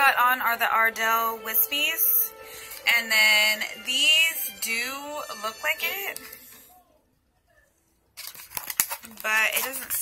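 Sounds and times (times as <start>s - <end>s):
plastic pack crinkling: 8.1s - 10.0s.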